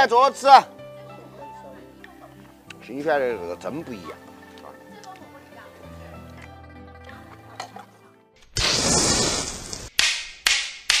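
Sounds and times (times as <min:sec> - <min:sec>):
loud crash: 0:08.6 - 0:09.9.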